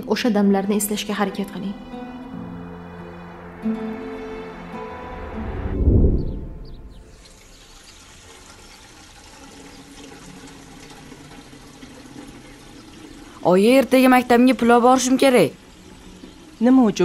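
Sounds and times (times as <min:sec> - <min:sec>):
low swell: 0:01.3 - 0:07.5
water running into metal bucket: 0:07.1 - 0:17.0.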